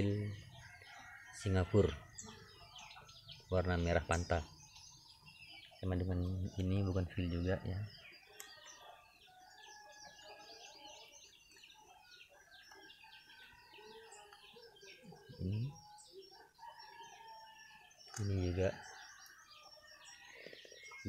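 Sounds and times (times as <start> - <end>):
many birds chirping: 0.0 - 21.0.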